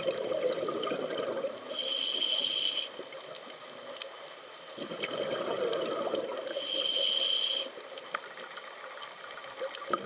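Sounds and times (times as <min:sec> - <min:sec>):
faint underwater clicks and crackles: 0:00.0 - 0:10.0
low hiss: 0:00.0 - 0:10.0
breathing through a regulator: 0:01.7 - 0:03.2, 0:06.4 - 0:07.8.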